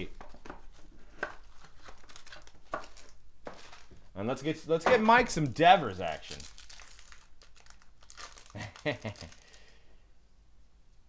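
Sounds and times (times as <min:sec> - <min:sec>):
plastic wrapper crinkling and tearing: 0:01.5 - 0:03.9, 0:05.4 - 0:09.8.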